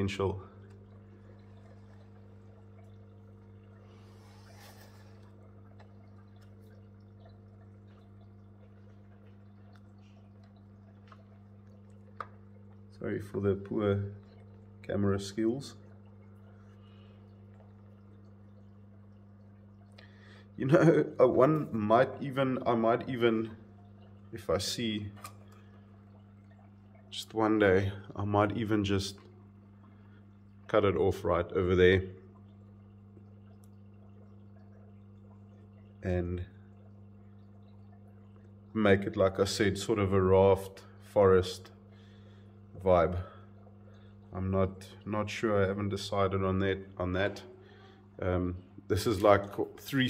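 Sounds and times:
aquarium pump hum: 0:00.0 - 0:50.0
water dripping and trickling: 0:00.0 - 0:50.0.

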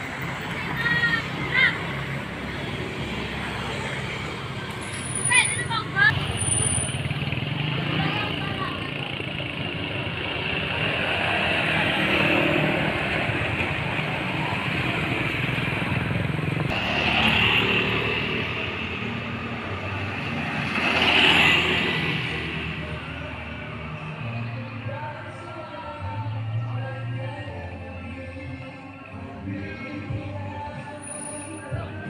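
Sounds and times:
road traffic: 0:00.0 - 0:32.0
vehicles passing: 0:00.0 - 0:32.0.

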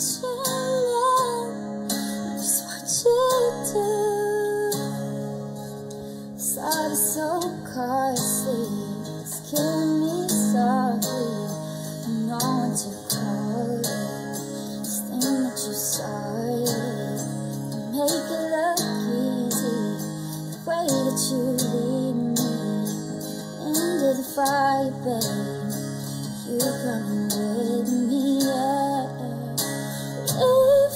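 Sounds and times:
strummed guitar: 0:00.0 - 0:30.9
woman singing: 0:00.0 - 0:30.9.

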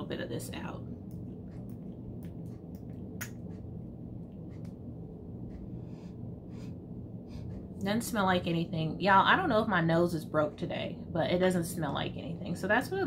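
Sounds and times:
low steady hum: 0:00.0 - 0:13.0
soft sniffing: 0:05.6 - 0:07.7.

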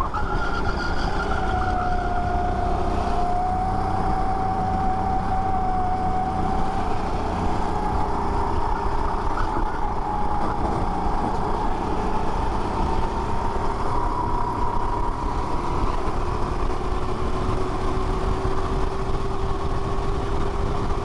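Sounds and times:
kart engine at full throttle: 0:00.0 - 0:21.0
wind rushing on camera: 0:00.0 - 0:21.0.

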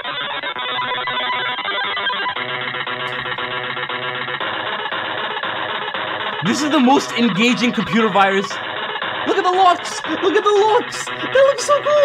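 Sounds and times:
harsh glitchy electronic music: 0:00.0 - 0:12.0.

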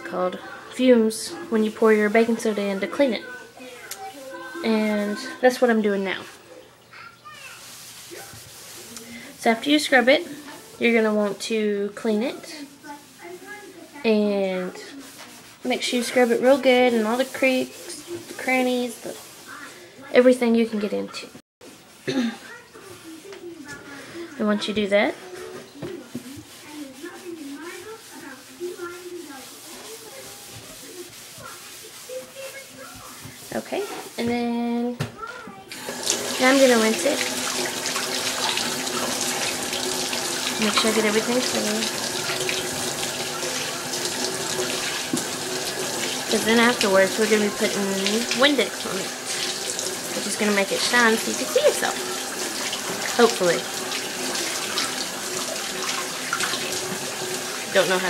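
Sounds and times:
sponge scrubbing metal sink: 0:00.0 - 0:21.0, 0:24.4 - 0:34.8, 0:35.7 - 0:58.0
faucet running into a sink: 0:35.7 - 0:58.0.

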